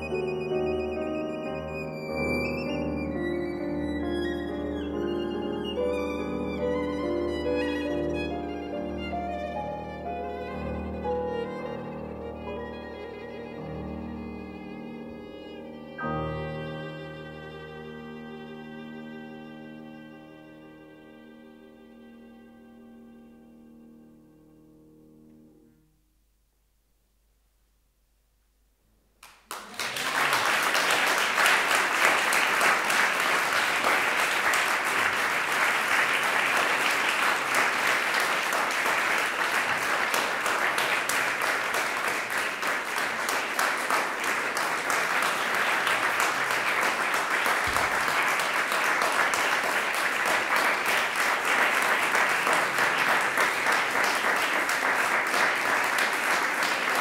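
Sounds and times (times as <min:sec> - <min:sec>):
audience applause: 0:29.2 - 0:57.0.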